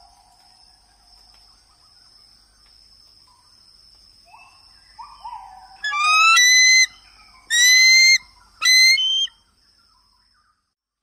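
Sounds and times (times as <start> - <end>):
bird whistling calls: 5.8 - 9.3.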